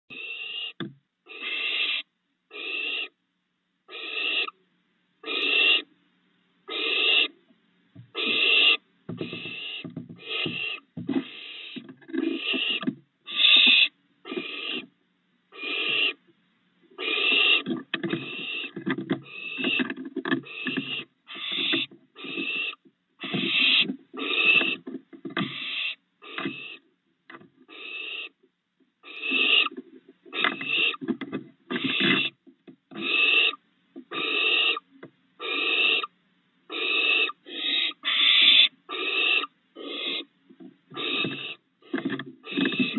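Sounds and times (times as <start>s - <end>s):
owl nestlings hissing: 0.1s - 3.2s, 3.9s - 4.6s, 5.2s - 5.9s, 6.7s - 7.4s, 8.1s - 16.2s, 16.8s - 26.9s, 27.6s - 28.4s, 29.0s - 42.9s.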